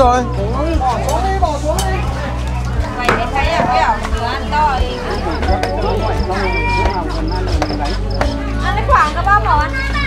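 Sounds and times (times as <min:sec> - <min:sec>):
people talking: 0:00.8 - 0:10.0.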